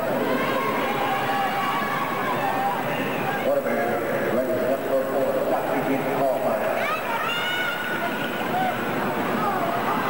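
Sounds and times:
high drawn-out shout: 0.0s - 3.5s.

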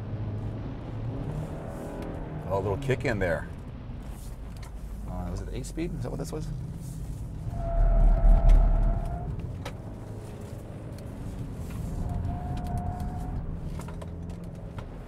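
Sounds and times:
engine and road rumble: 0.0s - 15.0s.

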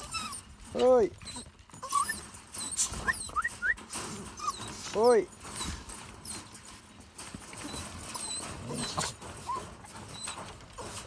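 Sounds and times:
dogs whining: 0.0s - 6.7s, 7.4s - 11.0s.

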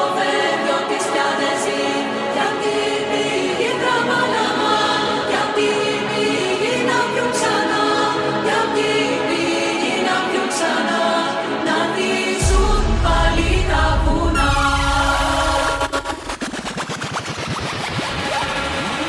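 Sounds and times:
deep bass line: 12.4s - 16.4s.

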